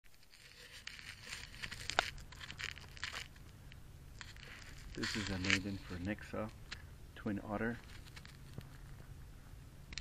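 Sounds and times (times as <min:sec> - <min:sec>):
camera handling rustling: 0:00.1 - 0:03.5, 0:04.2 - 0:06.9, 0:07.8 - 0:09.0.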